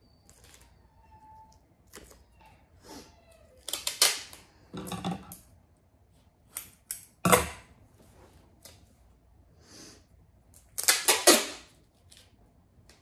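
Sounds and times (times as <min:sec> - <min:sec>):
tape ripping: 0:03.6 - 0:04.4, 0:10.6 - 0:12.3.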